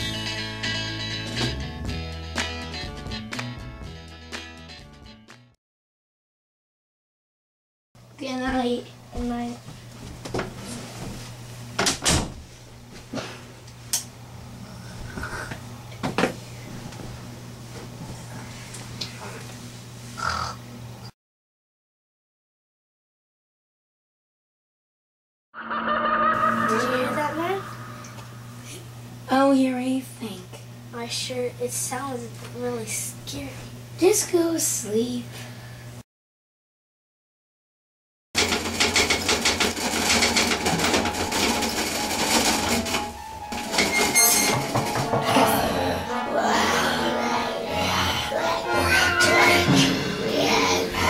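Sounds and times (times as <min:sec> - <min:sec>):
steady low hum: 0:08.0 - 0:21.1, 0:26.9 - 0:36.0, 0:44.8 - 0:51.0
rapid clattering rattle: 0:38.4 - 0:45.2.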